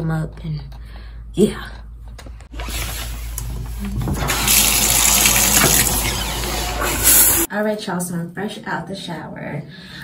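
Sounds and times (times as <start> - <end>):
shower water spraying: 4.1 - 7.5.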